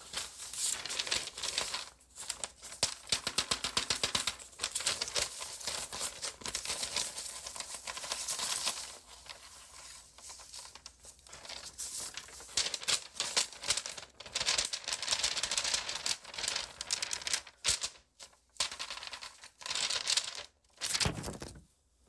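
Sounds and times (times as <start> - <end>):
paper rustling and crinkling: 0.0 - 21.8.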